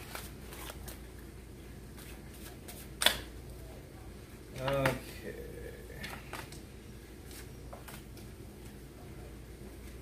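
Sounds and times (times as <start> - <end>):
cards being shuffled: 0.0 - 1.1
card snap: 3.0 - 3.3.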